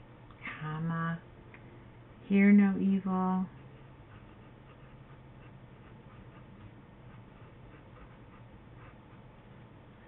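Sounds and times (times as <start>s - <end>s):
low steady hum: 0.0s - 10.0s
pen scratching on paper: 3.5s - 9.5s.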